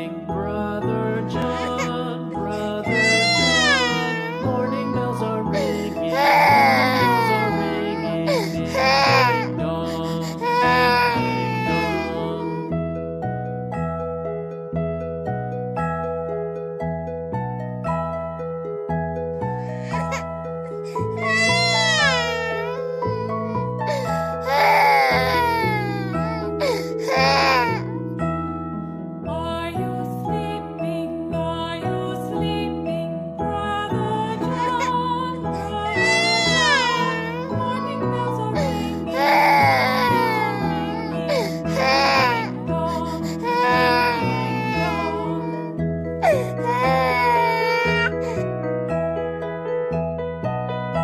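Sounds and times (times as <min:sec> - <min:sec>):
gentle background music: 0:00.0 - 0:51.0
baby crying: 0:01.4 - 0:12.7, 0:19.6 - 0:27.8, 0:34.5 - 0:48.4.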